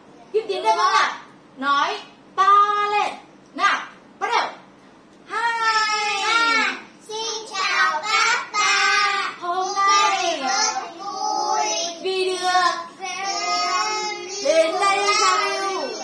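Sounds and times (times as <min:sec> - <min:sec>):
children chanting in sing-song: 0:05.3 - 0:16.0.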